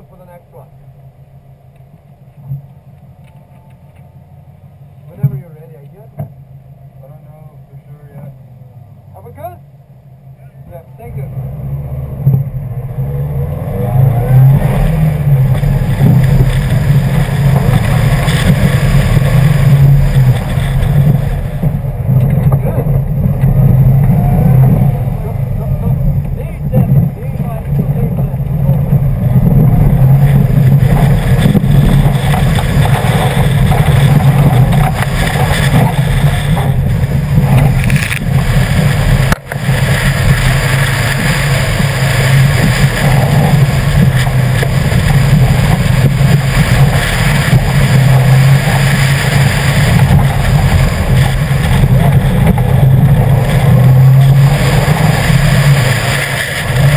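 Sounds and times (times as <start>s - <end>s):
car engine accelerating: 0.0s - 56.9s.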